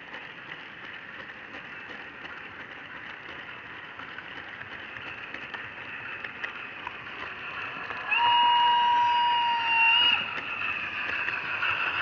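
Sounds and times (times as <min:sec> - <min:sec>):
model train motor whirring: 0:00.0 - 0:12.0
model locomotive whistle tone: 0:08.0 - 0:10.4.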